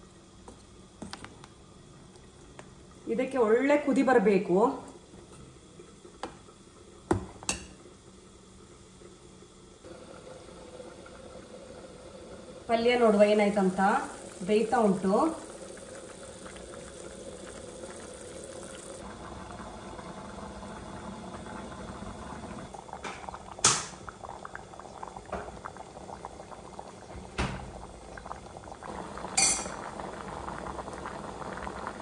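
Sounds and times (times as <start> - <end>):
curry bubbling in a covered pan: 4.3 - 32.0.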